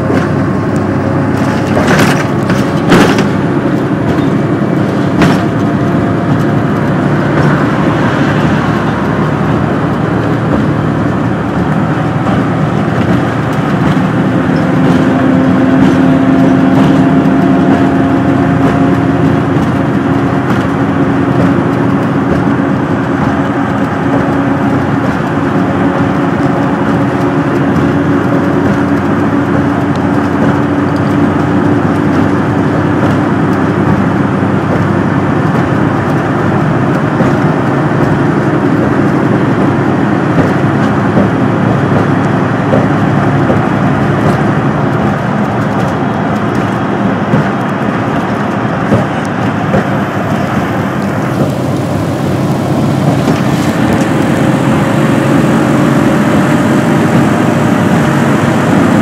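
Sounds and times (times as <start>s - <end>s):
vehicle ride noise: 0.0s - 59.0s.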